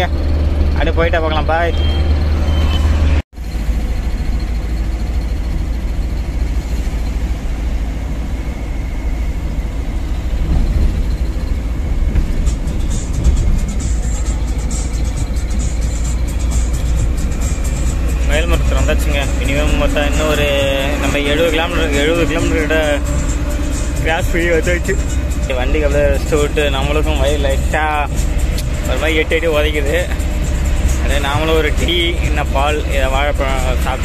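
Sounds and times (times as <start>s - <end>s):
road and engine rumble in car: 0.0s - 34.0s.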